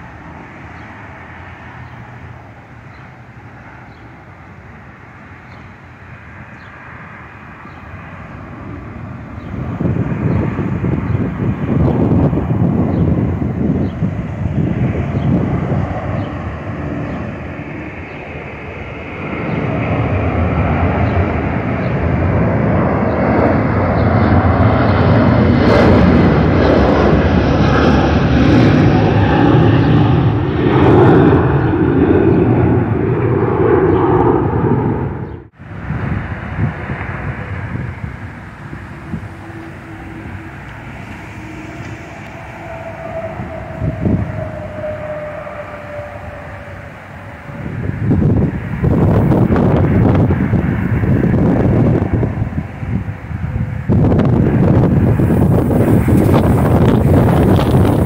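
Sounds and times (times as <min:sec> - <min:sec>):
airliner engine noise overhead: 0:00.0 - 0:58.0.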